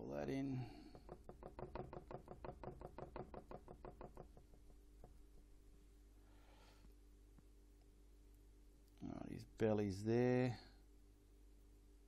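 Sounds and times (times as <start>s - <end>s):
paintbrush tapping on canvas: 0.7s - 5.3s.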